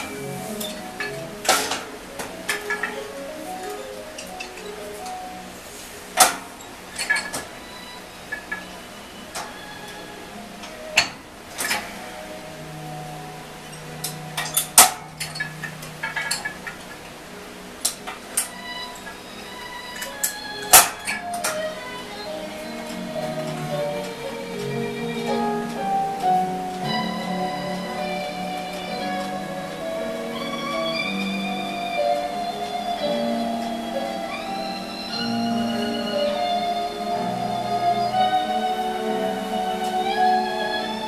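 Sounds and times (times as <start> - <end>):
background music: 0.0 - 41.0
weight machine metal clanks: 13.7 - 17.0.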